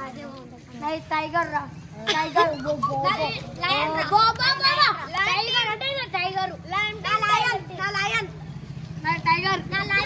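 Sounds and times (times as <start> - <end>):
boys talking and calling out: 0.0 - 10.0.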